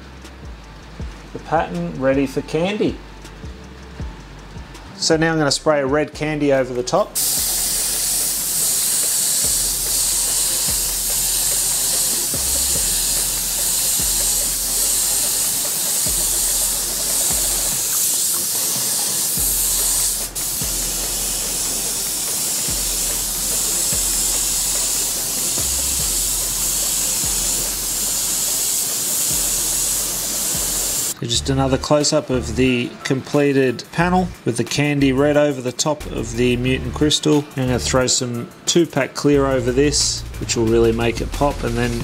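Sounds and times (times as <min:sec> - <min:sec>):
spray gun hissing: 0:07.2 - 0:31.2.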